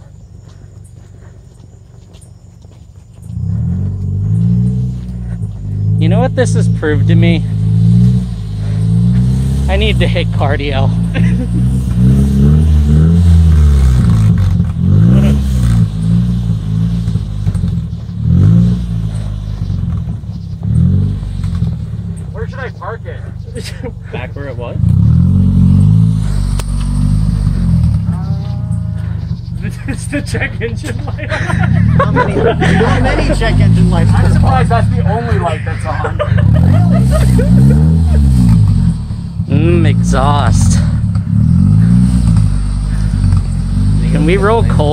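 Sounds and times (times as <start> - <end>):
car engine revving: 3.2 - 44.9.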